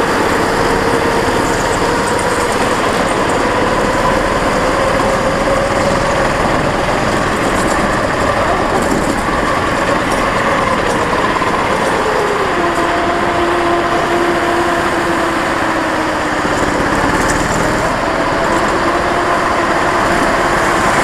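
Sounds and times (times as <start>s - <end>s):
go-kart engine racing: 0.0s - 21.0s
rushing and vibration noise: 0.0s - 21.0s.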